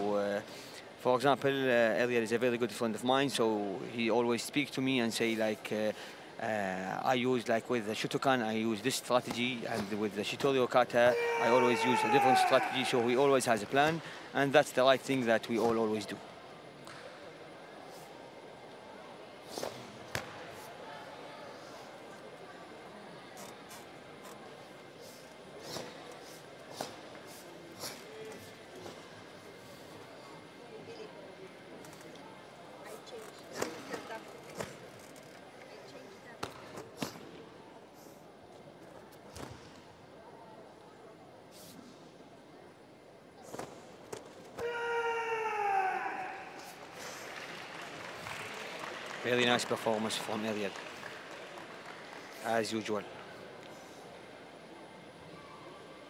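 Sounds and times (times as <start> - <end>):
long falling shout: 11.1 - 13.2, 44.6 - 46.6
crowd applause: 46.5 - 53.2.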